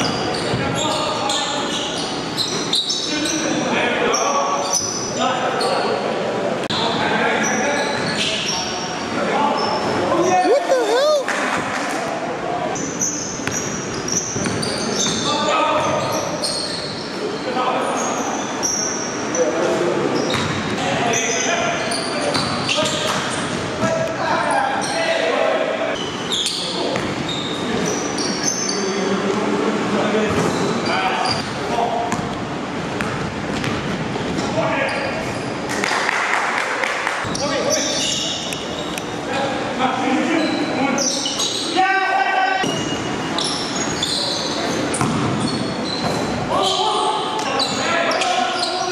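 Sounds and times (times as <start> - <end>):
shoes squeaking on court: 0.0 - 3.5, 6.7 - 8.7, 12.8 - 25.1, 25.9 - 28.9, 30.3 - 35.7, 37.2 - 39.2, 40.3 - 41.8, 42.6 - 48.9
players calling out: 10.1 - 11.5.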